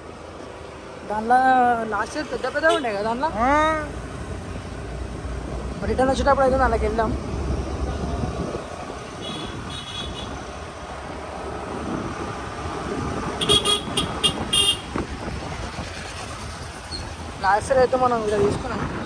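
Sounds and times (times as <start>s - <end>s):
vehicle horn beeping: 13.4s - 14.9s.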